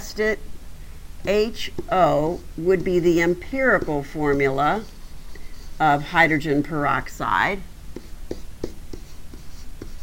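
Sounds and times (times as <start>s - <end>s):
steady low hum: 0.0s - 10.0s
stylus tapping and scratching on tablet: 1.3s - 6.2s, 7.9s - 10.0s.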